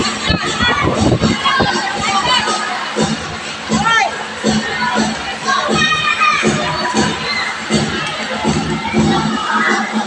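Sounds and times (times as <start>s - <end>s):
children shouting and cheering: 0.0s - 10.0s.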